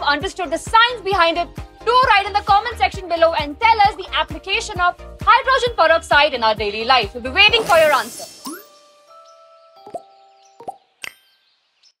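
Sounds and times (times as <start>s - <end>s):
pop and click sound effects: 7.6s - 8.7s, 9.8s - 11.2s.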